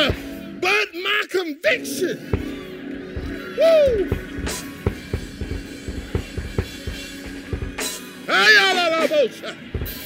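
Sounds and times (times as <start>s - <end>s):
drum kit kick and snare hits: 3.2s - 8.1s.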